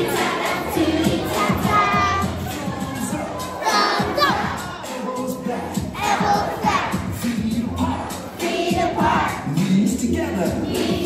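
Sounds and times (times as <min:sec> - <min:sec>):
children shouting: 0:00.0 - 0:05.2, 0:06.0 - 0:07.0
background music: 0:00.0 - 0:11.0.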